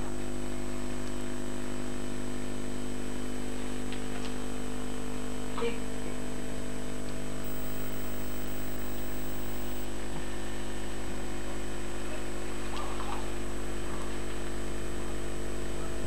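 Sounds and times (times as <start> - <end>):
faint high sound: 7.4 - 9.9
low hum: 7.4 - 9.9.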